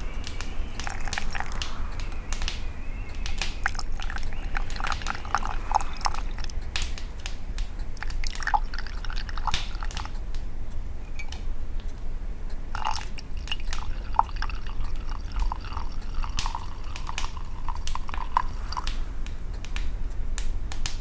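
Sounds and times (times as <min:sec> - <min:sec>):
low fire rumble: 0:00.0 - 0:21.0
wood crackling in stove: 0:00.0 - 0:21.0.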